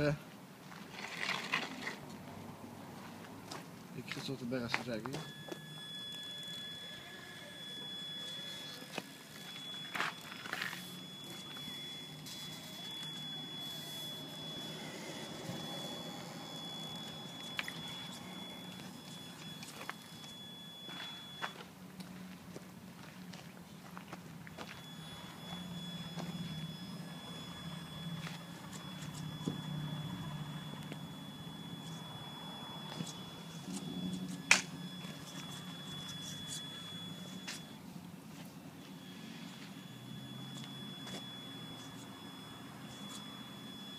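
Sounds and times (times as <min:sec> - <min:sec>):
rc car motor and gears whining: 0:05.1 - 0:21.6, 0:24.6 - 0:37.8, 0:38.8 - 0:43.9.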